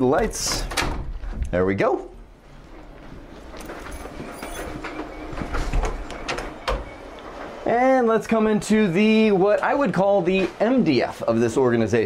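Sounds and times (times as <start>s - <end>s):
door pulled open: 0.2s - 1.6s, 2.7s - 7.6s
closet door latch clicking: 0.5s - 1.1s
footsteps: 1.1s - 11.4s.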